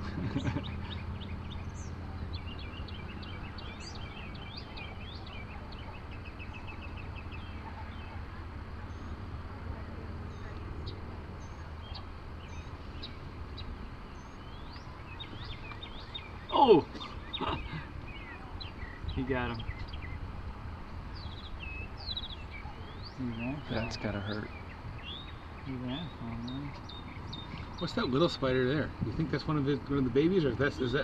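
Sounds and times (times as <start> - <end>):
small birds chirping: 0.0 - 31.0
steady low hum: 0.0 - 31.0.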